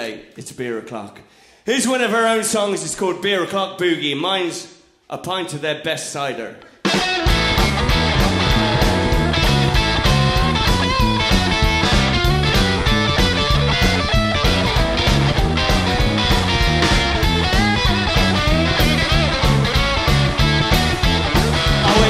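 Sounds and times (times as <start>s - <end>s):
drums: 6.7s - 22.0s
electric guitar lead line: 6.9s - 22.0s
upright double bass: 7.2s - 22.0s.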